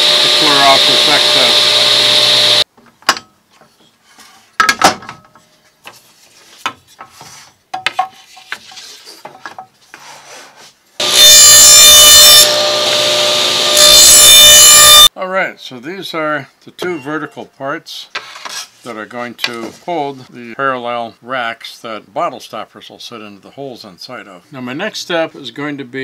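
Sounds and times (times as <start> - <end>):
table saw running: 0.0 - 2.6, 11.0 - 15.1.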